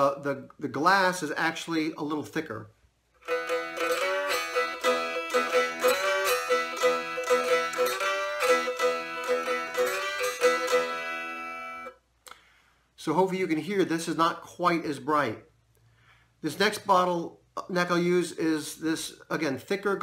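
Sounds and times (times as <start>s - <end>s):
slide guitar plucked notes: 3.2s - 12.0s.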